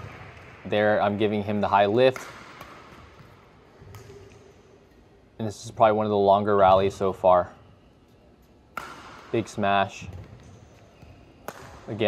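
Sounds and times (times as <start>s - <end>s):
racket hitting shuttlecock: 0.0s - 0.6s, 2.1s - 4.6s, 8.7s - 12.0s.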